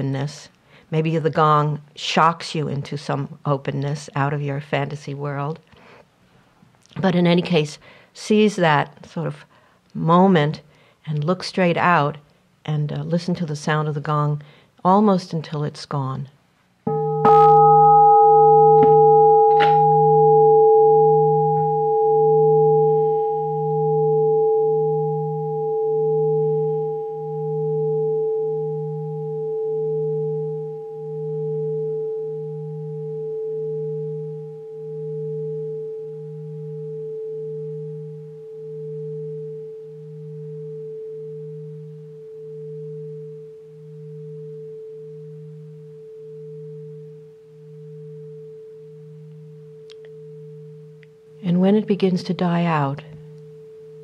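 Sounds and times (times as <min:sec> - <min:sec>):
meditation gong ringing: 0:16.9 - 0:51.4.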